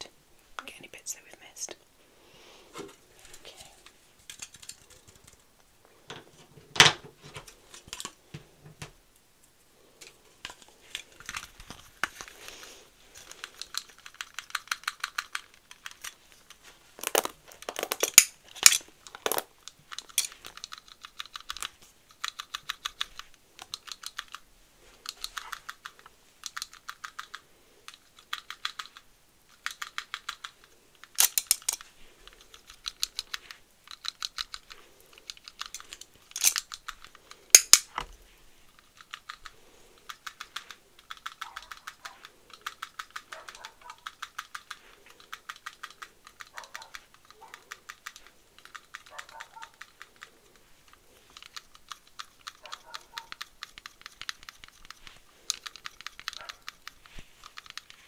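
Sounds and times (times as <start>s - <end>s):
toy hair dryer clicking: 37.6s - 38.0s.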